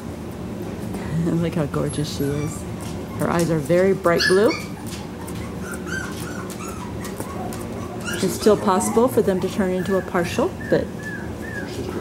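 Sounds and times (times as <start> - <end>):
puppy whimpering: 1.3 - 12.0.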